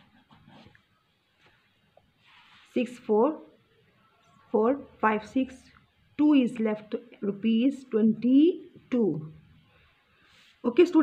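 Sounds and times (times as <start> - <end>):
faint soft scratchy sounds: 0.0 - 4.6.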